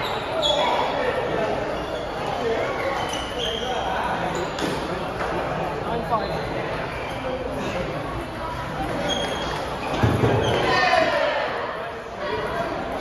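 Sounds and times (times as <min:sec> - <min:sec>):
background talk in echoing hall: 0:00.0 - 0:13.0.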